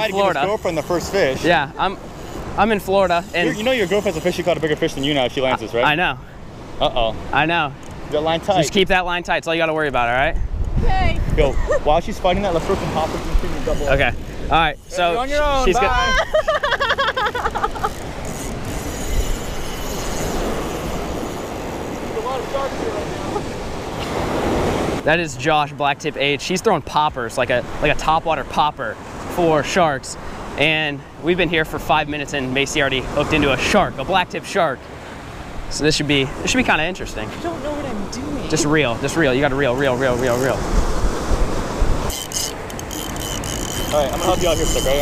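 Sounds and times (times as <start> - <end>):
wind buffeting microphone: 9.9 - 16.4, 37.6 - 42.1
breaking surf: 10.9 - 25.3, 27.6 - 45.0.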